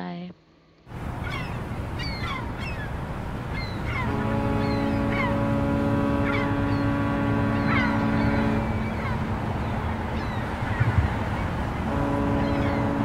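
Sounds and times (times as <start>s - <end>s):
road and engine noise: 0.8s - 13.0s
vehicle horn blast: 3.9s - 10.0s, 11.8s - 13.0s.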